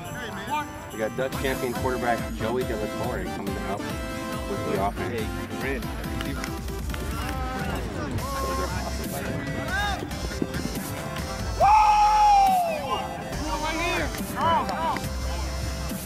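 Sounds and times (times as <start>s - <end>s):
music with steady beat: 0.0s - 16.0s.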